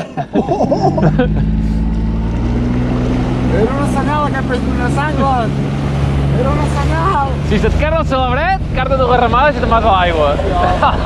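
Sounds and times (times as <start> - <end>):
water rushing along hull: 0.0 - 11.0
outboard motor running: 0.4 - 11.0.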